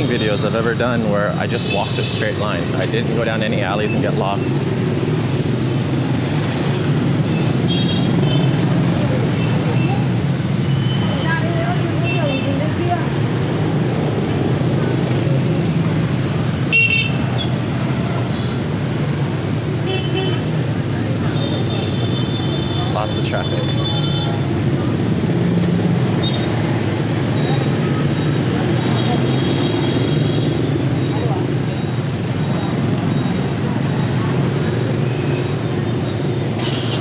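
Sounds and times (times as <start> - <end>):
motorbike traffic drone: 0.0 - 37.0.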